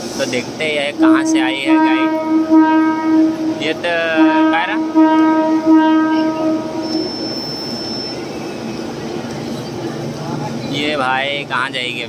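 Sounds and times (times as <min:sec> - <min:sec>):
train rumble: 0:00.0 - 0:12.0
train horn: 0:00.9 - 0:07.6
high steady squeal: 0:05.0 - 0:09.6.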